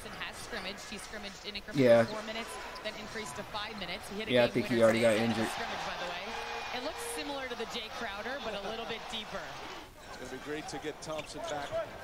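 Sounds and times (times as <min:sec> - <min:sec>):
television commentator speaking: 0:00.2 - 0:09.3.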